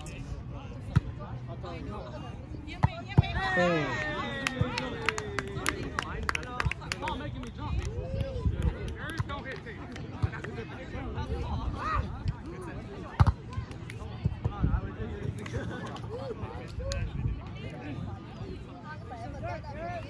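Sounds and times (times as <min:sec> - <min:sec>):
players shouting: 0:03.2 - 0:06.0.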